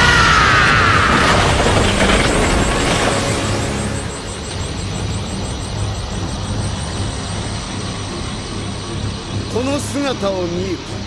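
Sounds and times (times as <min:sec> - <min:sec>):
blast: 0:00.0 - 0:05.2
low rumbling energy roar: 0:00.0 - 0:11.0
man speaking: 0:09.5 - 0:11.0.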